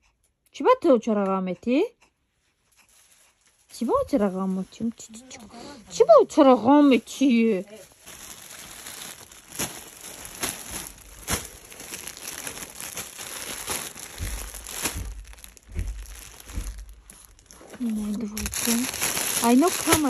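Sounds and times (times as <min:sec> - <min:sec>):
plastic bags crinkling: 0:03.4 - 0:20.0
low handling bumps: 0:10.7 - 0:18.7.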